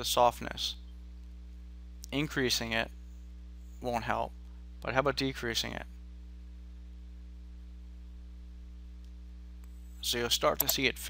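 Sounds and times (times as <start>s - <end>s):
faint microphone hiss: 0.0s - 11.0s
low electrical mains hum: 0.0s - 11.0s.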